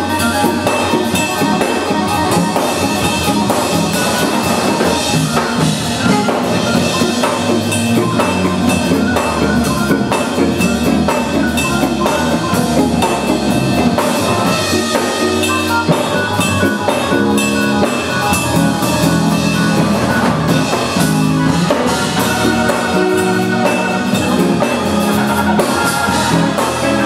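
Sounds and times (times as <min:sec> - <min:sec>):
drum kit beat: 0:00.0 - 0:27.0
electric guitar: 0:00.0 - 0:27.0
keyboard chords: 0:00.0 - 0:27.0.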